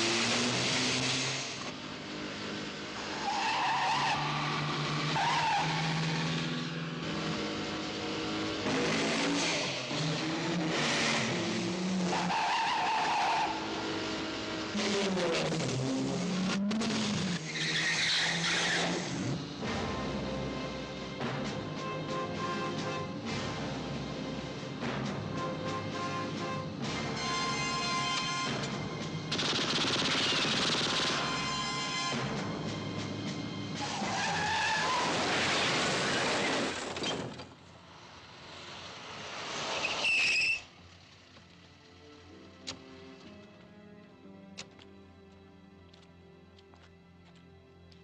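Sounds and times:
car engine at high revs: 0.0s - 17.6s
short loud tyre screech: 3.1s - 6.3s, 12.0s - 13.7s, 17.3s - 19.2s, 33.8s - 37.3s, 39.4s - 40.8s
tyre squeal: 17.5s - 19.0s, 39.7s - 40.8s.

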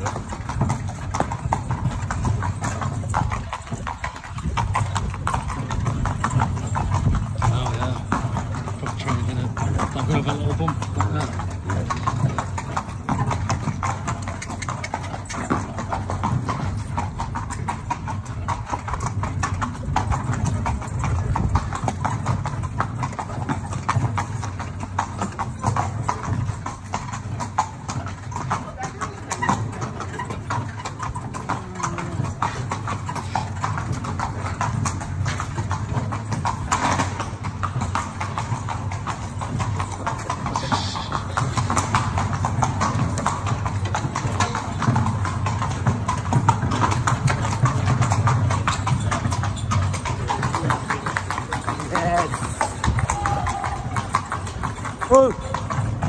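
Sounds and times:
horse hooves clip-clopping: 0.0s - 56.0s
metal carriage rattling: 0.0s - 56.0s.

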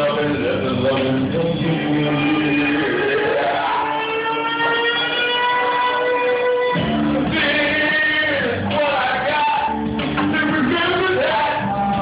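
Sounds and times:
man singing into a microphone: 0.0s - 6.3s, 7.2s - 12.0s
karaoke backing track: 0.0s - 12.0s.

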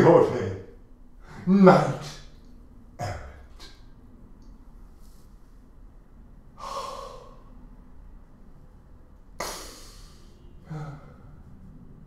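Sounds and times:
faint low room hum: 0.0s - 12.0s
man gasping: 6.6s - 7.5s, 9.4s - 11.4s.

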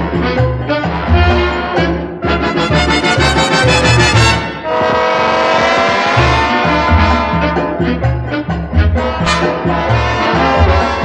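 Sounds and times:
bass line: 0.0s - 11.0s
dance orchestra brass: 0.0s - 11.0s.

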